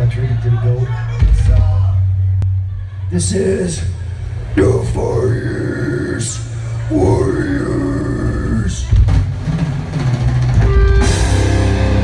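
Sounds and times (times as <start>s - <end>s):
death metal band playing: 3.2s - 12.0s
shouted vocal: 4.6s - 8.9s.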